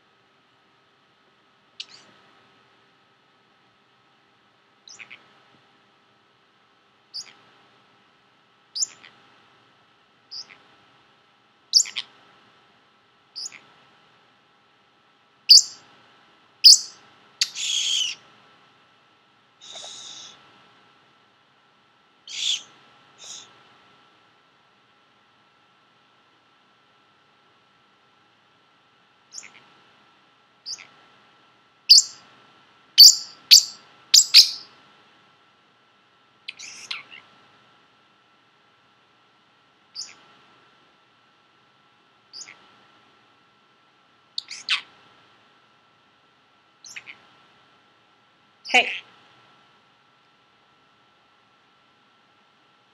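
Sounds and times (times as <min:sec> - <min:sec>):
parrotlet chirping: 0:04.9 - 0:05.2, 0:07.1 - 0:07.4, 0:08.8 - 0:09.1, 0:10.3 - 0:10.6, 0:11.7 - 0:12.1, 0:13.4 - 0:13.6, 0:15.5 - 0:15.8, 0:16.6 - 0:18.2, 0:22.3 - 0:23.5, 0:29.3 - 0:29.6, 0:30.6 - 0:30.9, 0:31.9 - 0:32.2, 0:33.0 - 0:34.7, 0:36.5 - 0:37.2, 0:40.0 - 0:40.2, 0:42.3 - 0:42.6, 0:44.4 - 0:44.9, 0:46.8 - 0:47.2
rough parrot call: 0:16.7 - 0:18.2, 0:22.3 - 0:23.5.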